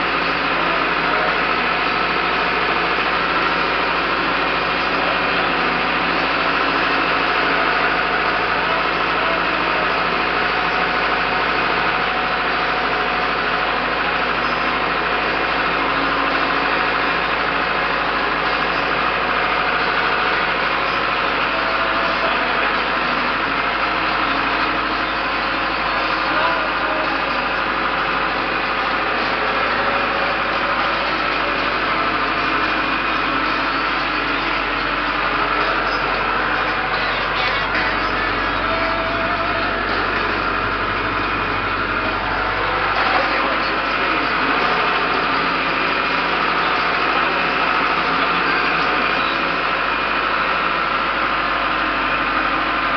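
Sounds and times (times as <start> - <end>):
tractor engine running: 0.0 - 52.9.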